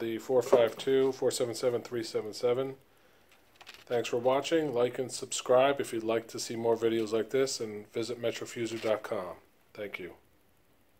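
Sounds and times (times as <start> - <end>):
man speaking: 0.0 - 2.8, 3.9 - 10.3.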